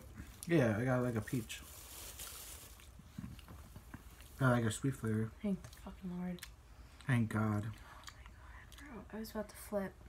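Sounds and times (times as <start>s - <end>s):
low room hum: 0.0s - 10.0s
chewing jelly bean: 5.5s - 9.0s
soft mouth clicks: 8.0s - 8.9s.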